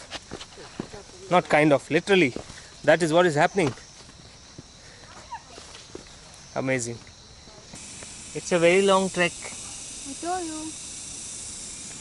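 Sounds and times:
footsteps on rocky dirt trail: 0.0 - 1.6, 2.3 - 2.7, 3.6 - 6.2
outdoor background hiss: 0.0 - 12.0.

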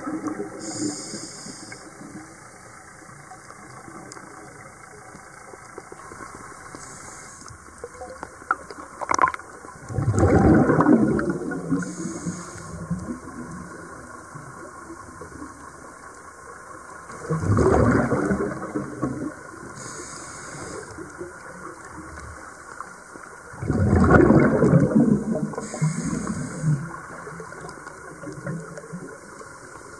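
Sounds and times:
exhaled bubbles rushing underwater: 0.0 - 29.9
regulator inhaling hiss: 0.6 - 2.6, 6.4 - 7.8, 11.7 - 13.0, 19.7 - 21.2, 25.5 - 27.3.

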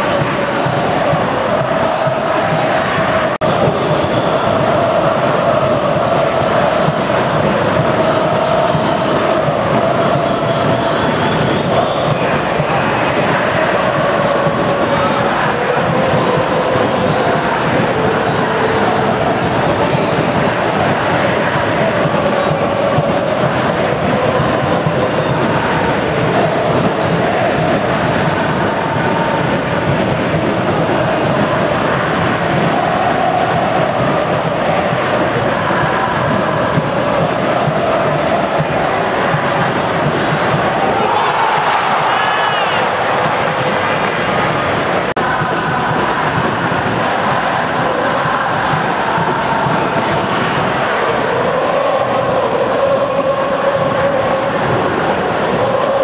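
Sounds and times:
stadium crowd chanting and singing: 0.0 - 56.0.

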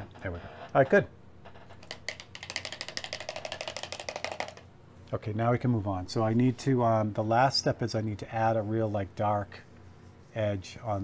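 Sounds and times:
rattling clicks of small hard objects: 1.8 - 4.7.

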